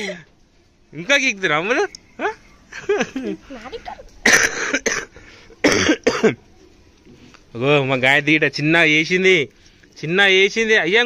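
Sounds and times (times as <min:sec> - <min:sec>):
person coughing: 0:04.2 - 0:06.4.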